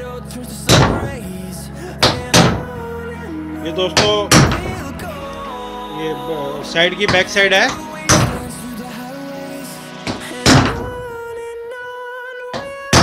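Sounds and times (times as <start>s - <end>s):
background song with singing: 0.0s - 13.0s.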